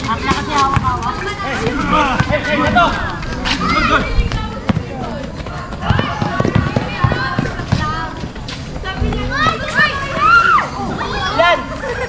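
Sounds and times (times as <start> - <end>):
feet on court: 0.0 - 10.5
basketball bouncing: 0.2 - 3.4, 4.1 - 9.6
people shouting: 9.3 - 11.7.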